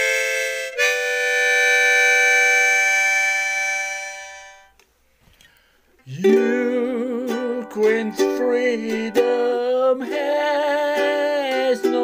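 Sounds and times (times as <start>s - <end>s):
harmonica chord: 0.0s - 4.8s.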